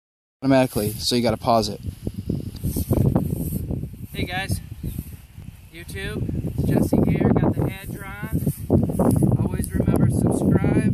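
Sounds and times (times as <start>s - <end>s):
wind buffeting microphone: 0.4s - 10.9s.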